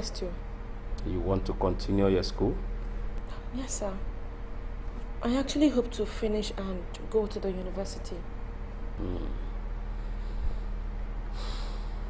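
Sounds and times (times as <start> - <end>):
low electrical hum: 0.0 - 12.0
sharp breath through nose: 10.1 - 12.0.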